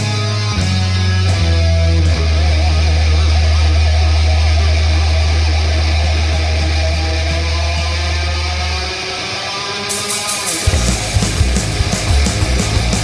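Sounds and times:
distorted electric guitars: 0.0 - 13.0
held low bass note: 10.7 - 12.0.

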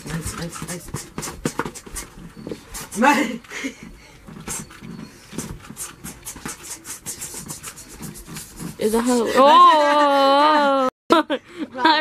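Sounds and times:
person panting rapidly: 0.2 - 4.7, 5.3 - 8.8.

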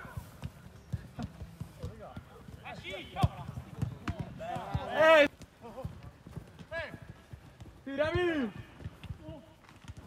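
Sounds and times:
ball being kicked: 0.0 - 6.7
running feet: 0.0 - 10.0
players shouting: 2.4 - 5.9.

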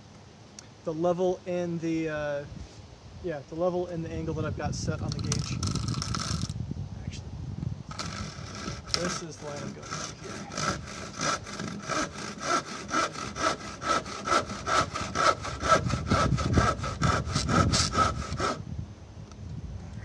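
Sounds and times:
hand saw cutting wood: 7.9 - 18.6.

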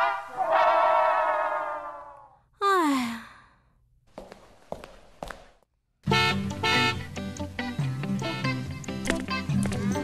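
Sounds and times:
woman sighing: 2.5 - 3.7.

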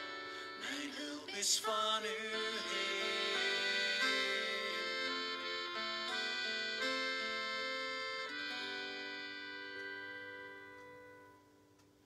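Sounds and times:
held keyboard chord: 0.0 - 11.9.

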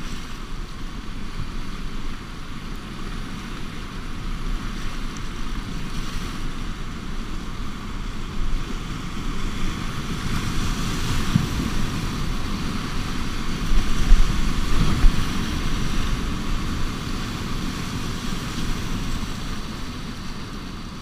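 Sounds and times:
whitewater rapids rushing: 0.0 - 21.0.

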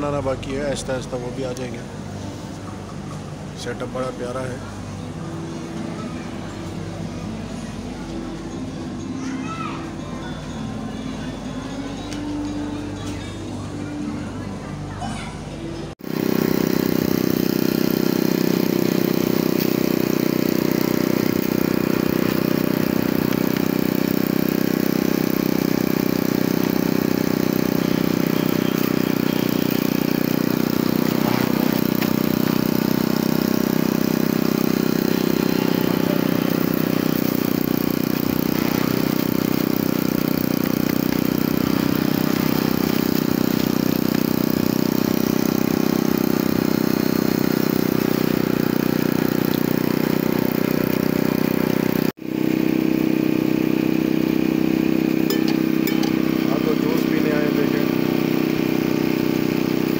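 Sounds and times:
juicer motor hum: 16.0 - 59.9.

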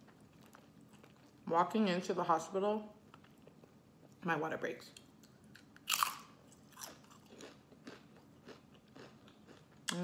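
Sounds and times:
chip crunching while chewed: 5.2 - 10.0.

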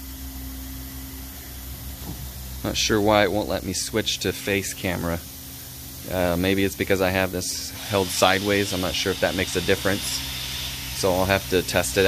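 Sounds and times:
carpet cleaning extraction machine: 6.0 - 12.0.

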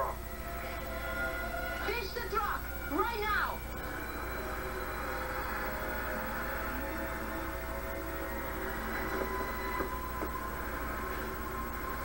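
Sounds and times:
low constant hum: 0.0 - 12.0
tv soundtrack droning rumble: 0.0 - 12.0.

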